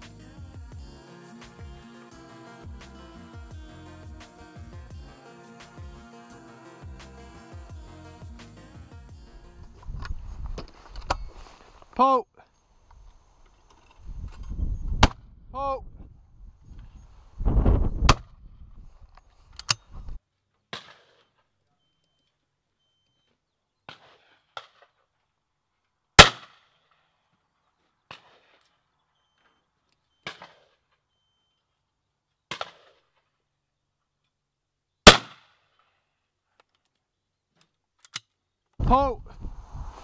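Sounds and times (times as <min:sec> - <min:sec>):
wind rumble on microphone: 0:14.0 - 0:19.2, 0:38.8 - 0:40.0
shotgun shots: 0:26.2 - 0:26.6, 0:35.1 - 0:35.4.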